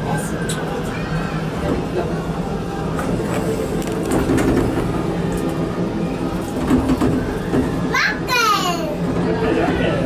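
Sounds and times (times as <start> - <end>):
monorail car rumbling: 0.0 - 10.0.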